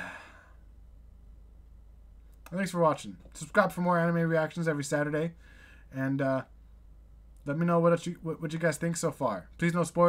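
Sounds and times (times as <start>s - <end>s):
man sighing: 0.0s - 0.7s
faint low hum: 0.0s - 10.0s.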